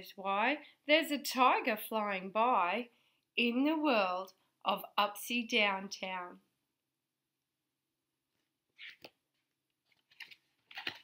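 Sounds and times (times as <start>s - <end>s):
book page rustling: 8.4s - 11.0s.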